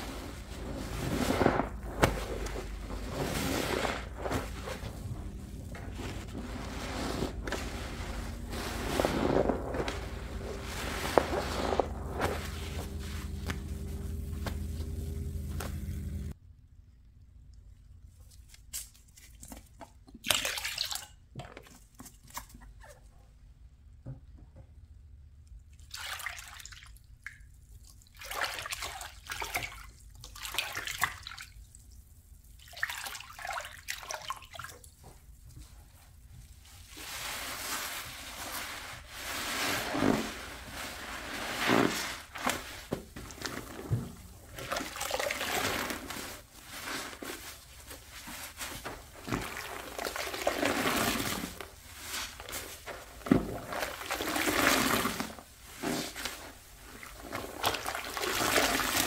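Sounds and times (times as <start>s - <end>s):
water sloshing in plastic basin: 0.0s - 16.3s, 32.6s - 35.8s, 36.4s - 59.0s.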